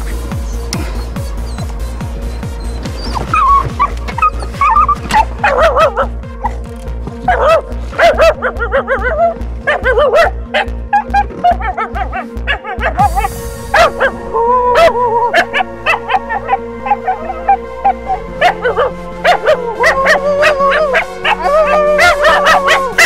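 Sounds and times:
dog whining and yipping: 0.0s - 6.6s, 7.2s - 13.0s, 14.8s - 23.0s
music with a steady beat: 0.0s - 23.0s.

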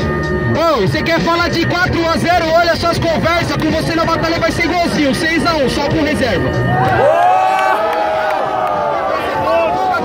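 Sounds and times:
crowd shouting: 6.7s - 10.0s.

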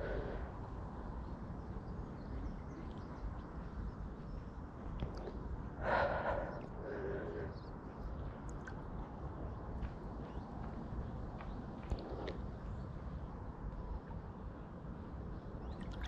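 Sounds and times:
swimmer breathing: 5.8s - 7.6s
water moving: 15.6s - 16.0s.

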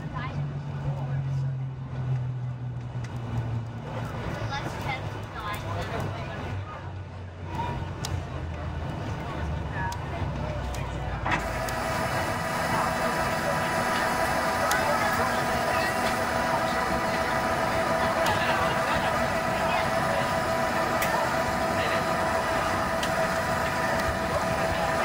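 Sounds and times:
wheels rumbling on runway: 0.0s - 25.0s
jet engines whining: 11.3s - 25.0s.

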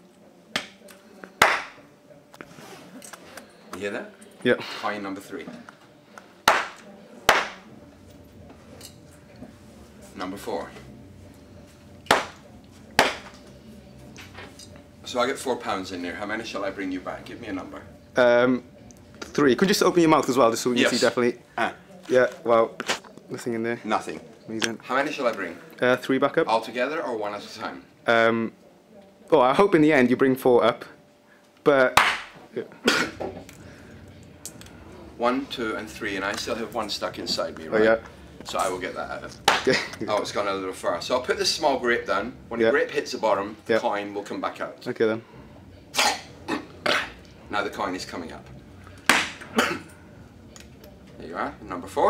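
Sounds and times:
man coughing: 32.8s - 33.3s, 49.5s - 49.9s.

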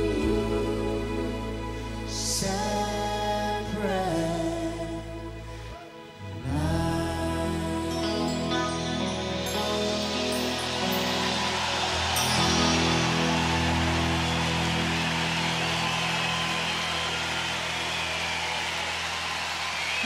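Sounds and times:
band holding sustained chord: 6.4s - 20.0s
crowd cheering and applause: 8.0s - 20.0s.

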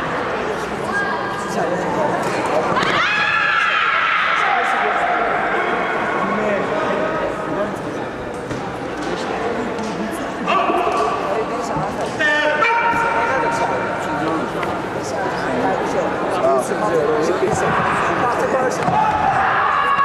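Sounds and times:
people shouting in echoing hall: 2.7s - 7.5s, 10.4s - 14.2s, 17.4s - 20.0s.

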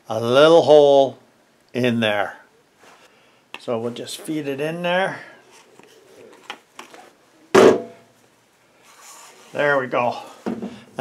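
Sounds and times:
faint handling noise: 5.5s - 7.2s
loud knock: 7.6s - 8.0s.

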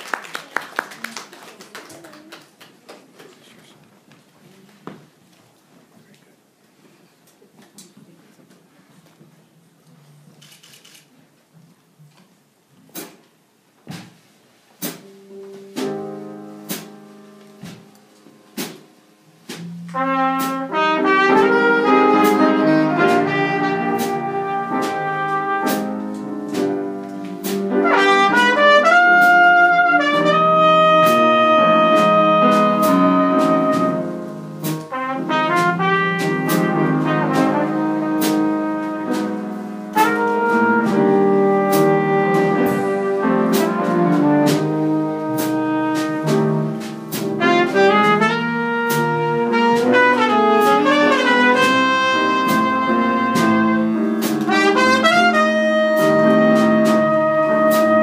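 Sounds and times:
soft piano chords: 14.9s - 58.0s
trumpet long held notes: 19.9s - 26.2s, 27.2s - 46.4s, 47.4s - 58.0s.

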